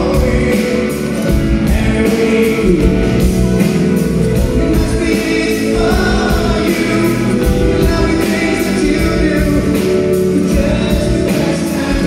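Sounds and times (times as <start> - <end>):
live pop band with singing: 0.0 - 12.0.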